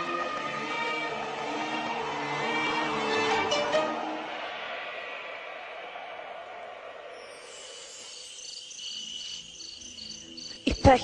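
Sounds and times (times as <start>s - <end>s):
violin music: 0.0s - 4.3s
crickets chirping: 6.9s - 11.0s.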